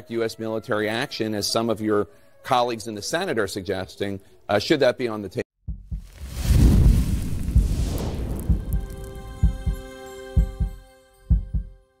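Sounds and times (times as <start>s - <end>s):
deep thuds: 5.7s - 9.8s
whoosh with deep rumble: 5.8s - 9.8s.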